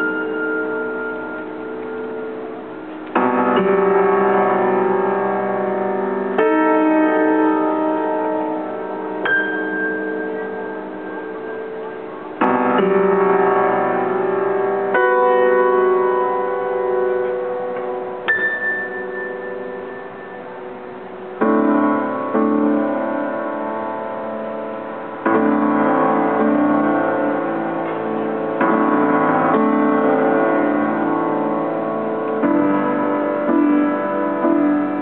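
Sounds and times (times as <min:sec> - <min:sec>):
slow piano piece: 0:00.0 - 0:35.0.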